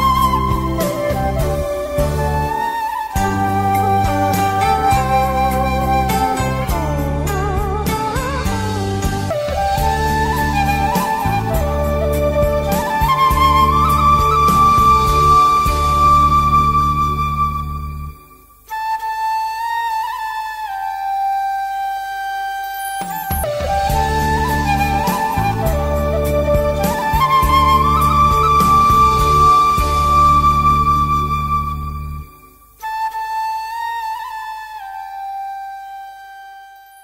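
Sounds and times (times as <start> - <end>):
bamboo flute long notes: 0.0 - 37.0
low musical accompaniment: 0.0 - 37.0.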